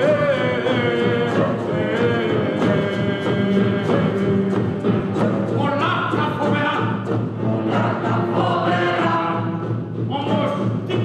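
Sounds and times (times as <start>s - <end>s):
ensemble singing in chorus: 0.0s - 5.6s, 7.3s - 10.0s
instrumental accompaniment: 0.0s - 11.0s.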